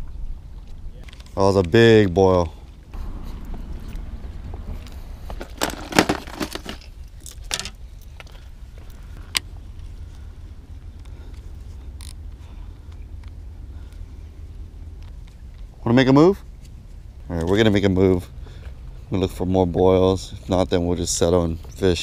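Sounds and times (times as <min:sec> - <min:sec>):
low rumble: 0:02.6 - 0:19.5.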